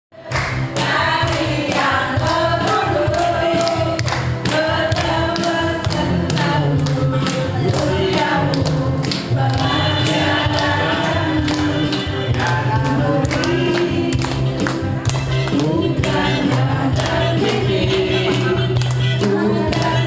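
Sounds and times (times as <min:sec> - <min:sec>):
music: 0:00.1 - 0:20.0
group singing: 0:00.2 - 0:20.0
people clapping in time: 0:00.2 - 0:20.0
man singing over microphone: 0:05.6 - 0:14.2, 0:15.3 - 0:20.0.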